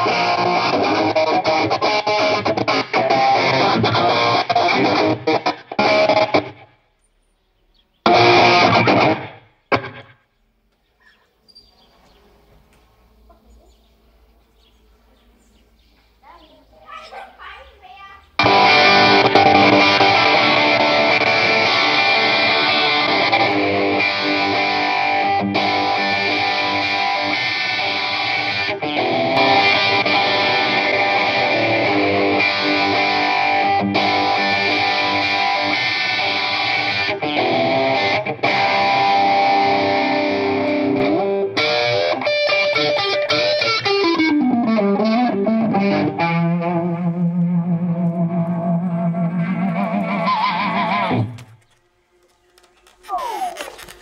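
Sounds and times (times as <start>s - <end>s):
distorted electric guitar chords: 0.0s - 6.8s, 8.0s - 10.2s, 18.4s - 54.0s.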